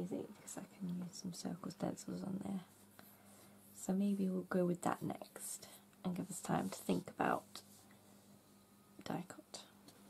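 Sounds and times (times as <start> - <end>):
woman speaking softly: 0.0 - 2.8, 3.8 - 7.6, 9.0 - 9.8
faint steady hum: 0.0 - 10.0.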